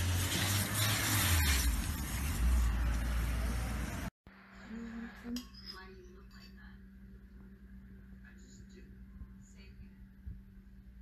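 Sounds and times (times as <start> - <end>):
street traffic rumble and hiss: 0.0 - 4.1.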